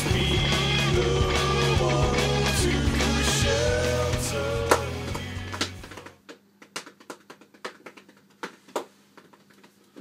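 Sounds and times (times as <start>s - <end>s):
background music: 0.0s - 6.2s.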